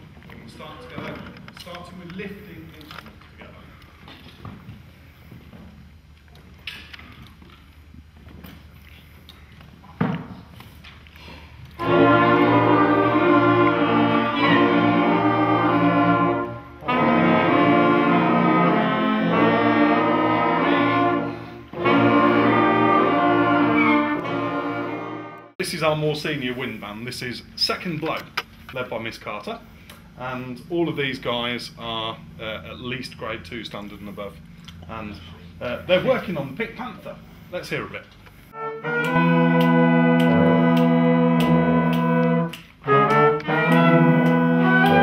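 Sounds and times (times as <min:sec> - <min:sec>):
wind band playing sustained chords: 0:11.7 - 0:25.6, 0:38.4 - 0:45.0.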